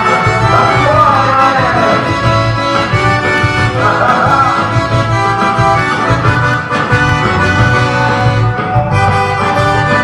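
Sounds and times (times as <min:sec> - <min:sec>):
accordion melody: 0:00.0 - 0:10.0.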